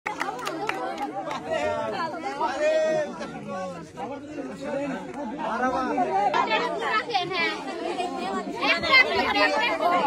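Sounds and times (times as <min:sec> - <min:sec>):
voices talking over one another: 0:00.2 - 0:10.0.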